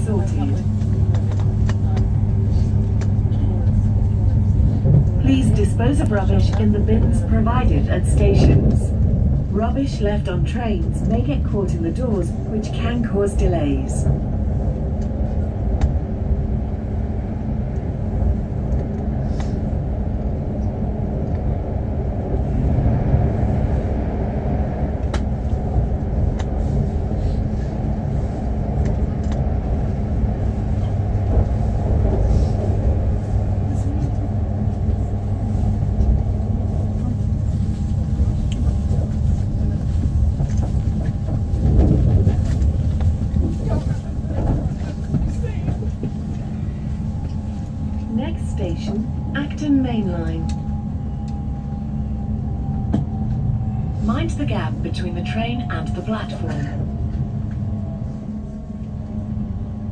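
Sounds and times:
freight train passing: 0.0s - 59.9s
train wheels rumbling on rail: 0.0s - 59.9s.

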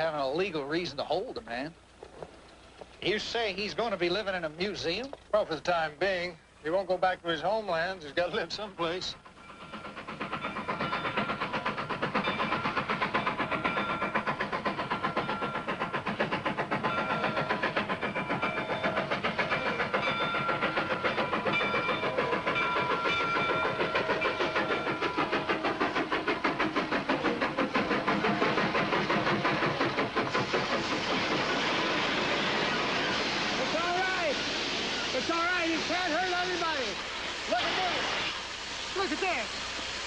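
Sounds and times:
steam train chugging: 0.0s - 40.0s
steam hiss: 5.6s - 40.0s.

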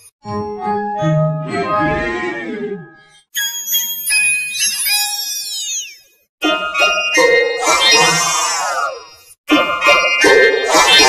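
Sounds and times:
pitch-shifted chime-like music: 0.3s - 8.3s.

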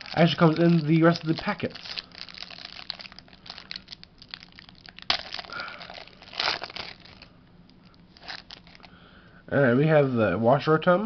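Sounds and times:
plastic wrapper crinkling: 0.0s - 9.0s.

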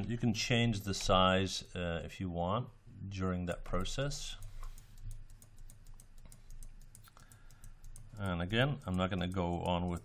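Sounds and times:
keyboard and mouse clicking: 3.7s - 10.0s.

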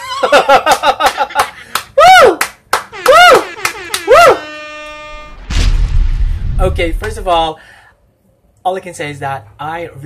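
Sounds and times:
man squealing excitedly: 2.0s - 2.4s, 3.0s - 3.5s, 4.1s - 4.5s
low rushing whoosh: 5.4s - 7.5s.

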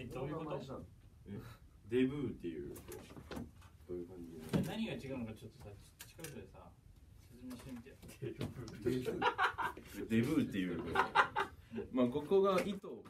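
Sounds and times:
men talking: 0.0s - 3.2s, 3.8s - 13.0s
men laughing: 8.2s - 12.0s.

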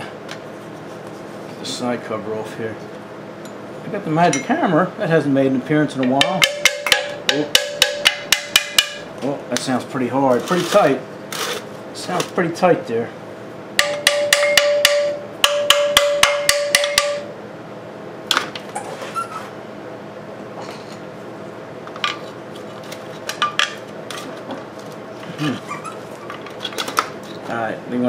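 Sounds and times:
hammer tapping metal cover: 6.0s - 9.1s, 13.8s - 17.3s.

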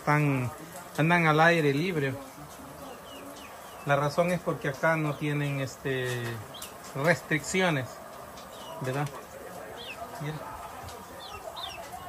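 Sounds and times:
small birds chirping: 0.0s - 12.0s
hen clucking: 0.1s - 12.0s.

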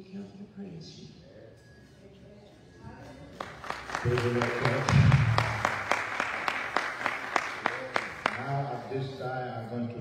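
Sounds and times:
hand clapping in steady rhythm: 3.4s - 8.6s
man speaking over microphone: 4.0s - 5.2s.

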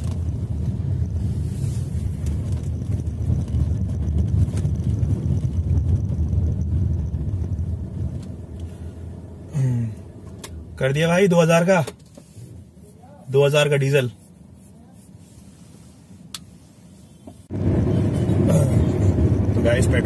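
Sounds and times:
car cabin road and engine rumble: 0.0s - 20.0s.

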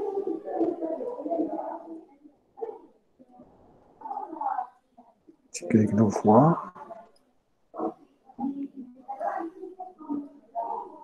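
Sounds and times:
muffled speech: 0.0s - 11.0s.

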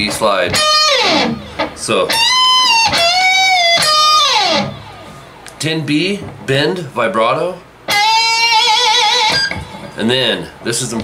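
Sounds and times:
electric guitar bent note: 0.0s - 5.5s, 7.9s - 10.0s.

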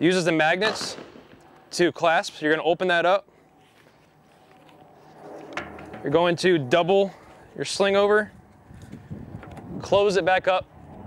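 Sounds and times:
rifle sling rustling: 3.6s - 6.2s.

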